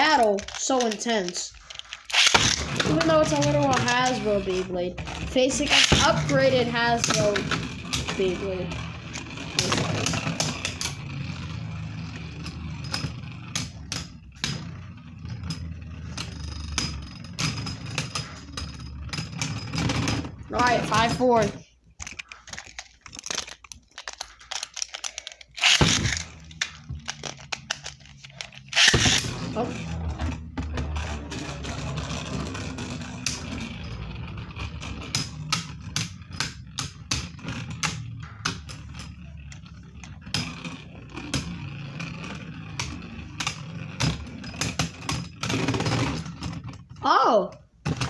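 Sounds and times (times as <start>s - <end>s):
spinning tops whirring: 0.0s - 46.9s.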